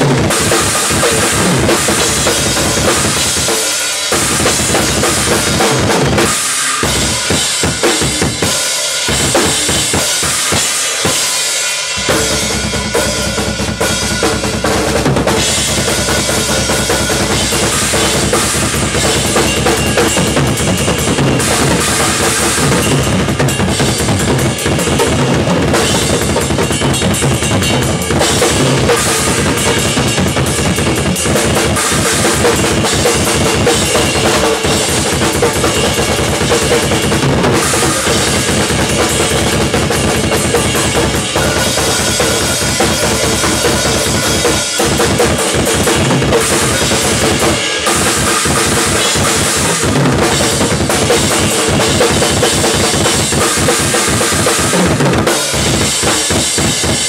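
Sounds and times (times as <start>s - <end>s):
drum kit played hard: 0.0s - 57.0s
ringing cymbals: 0.0s - 57.0s.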